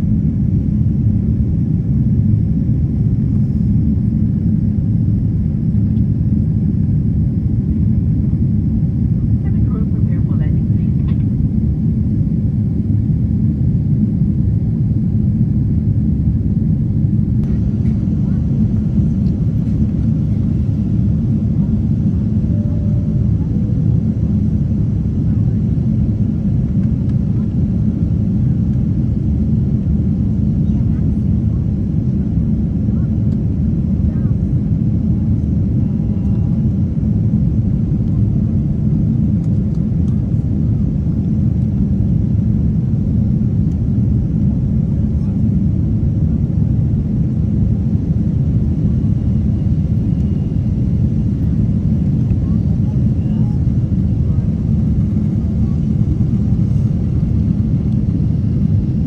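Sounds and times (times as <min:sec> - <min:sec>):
airplane cabin engine rumble: 0:00.0 - 0:59.0.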